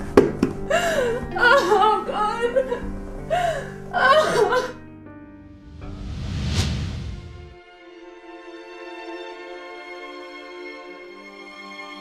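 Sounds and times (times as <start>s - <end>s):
soft background music: 0.0s - 12.0s
woman crying with sobs: 0.6s - 4.8s.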